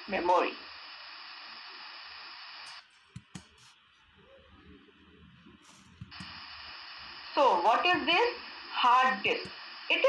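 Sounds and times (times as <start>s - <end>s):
electronic hiss: 0.0s - 2.9s, 5.6s - 10.0s.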